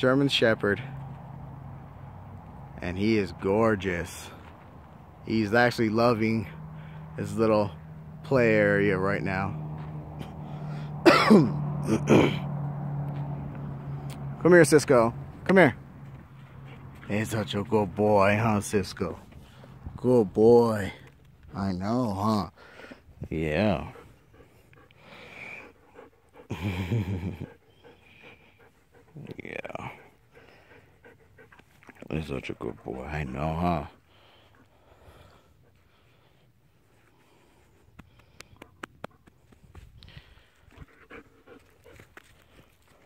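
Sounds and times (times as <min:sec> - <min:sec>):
person clearing throat: 0:11.0 - 0:12.5
person coughing: 0:11.0 - 0:12.5
dog panting quickly: 0:23.6 - 0:26.6, 0:27.3 - 0:43.0.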